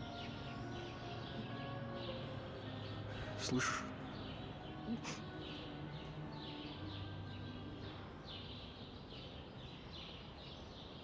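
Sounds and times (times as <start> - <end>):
faint birdsong: 0.0 - 11.0.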